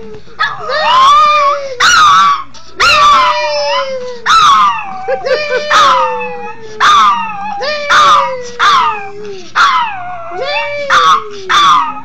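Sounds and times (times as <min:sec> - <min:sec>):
dog howling and yipping: 0:00.4 - 0:12.0.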